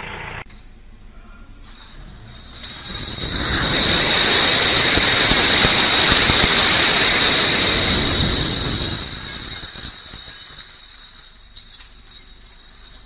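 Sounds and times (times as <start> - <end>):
steady high whine: 0.5 - 13.0
glass bottles crashing and breaking: 1.6 - 13.0.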